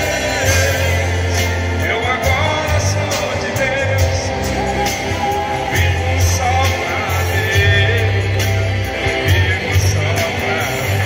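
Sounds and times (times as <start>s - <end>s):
gospel band playing: 0.0s - 11.0s
guitar: 0.0s - 11.0s
heavy bass line: 0.0s - 11.0s.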